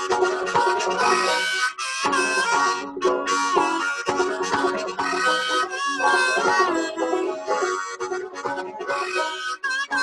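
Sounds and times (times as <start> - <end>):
harmonica melody: 0.0 - 10.0
plucked banjo: 0.0 - 10.0.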